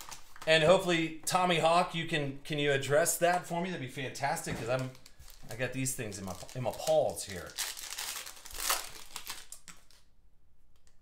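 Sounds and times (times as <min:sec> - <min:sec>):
foil wrapper crinkling: 0:00.0 - 0:00.7, 0:04.7 - 0:10.1.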